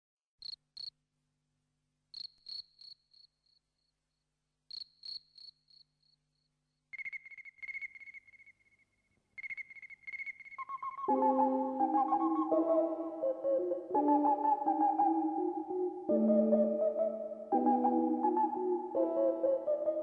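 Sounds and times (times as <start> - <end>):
trilled insect chirping: 0.4 - 0.9, 2.1 - 3.7, 4.7 - 11.1
high-pitched insect chirps: 2.2 - 3.3, 4.7 - 6.2, 6.9 - 8.8, 9.4 - 11.1.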